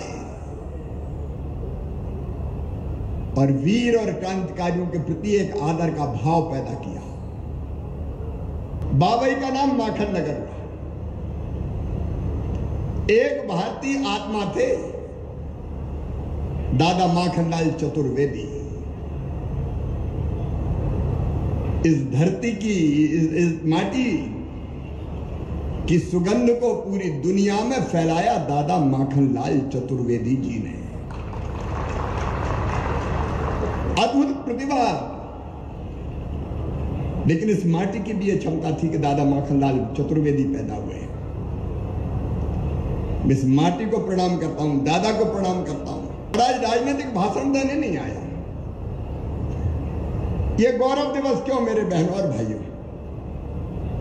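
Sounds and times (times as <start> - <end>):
low venue ambience rumble: 0.0 - 54.0.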